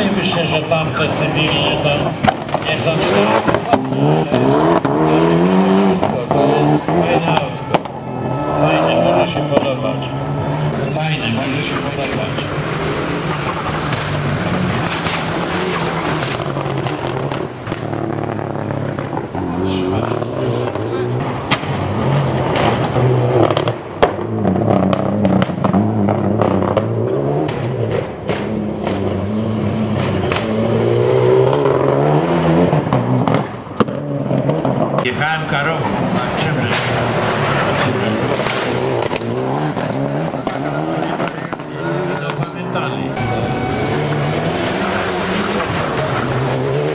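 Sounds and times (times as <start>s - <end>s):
rally car engines revving: 0.0s - 46.9s
sharp crack: 21.2s - 24.3s, 36.6s - 40.6s.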